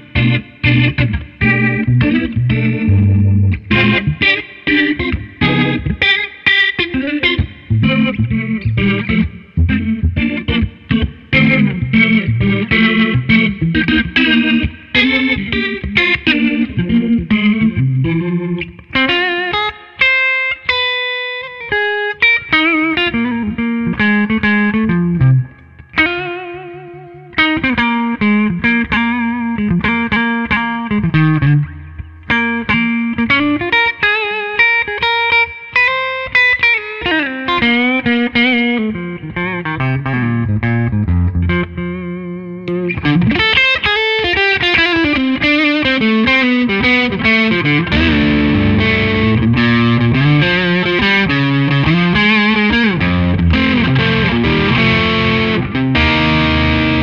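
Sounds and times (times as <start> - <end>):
electric guitar through amplifier: 0.0 - 57.0.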